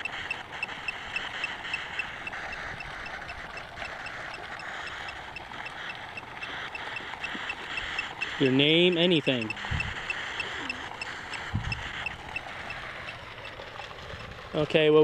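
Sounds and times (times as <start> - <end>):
crickets chirping: 6.5 - 13.6.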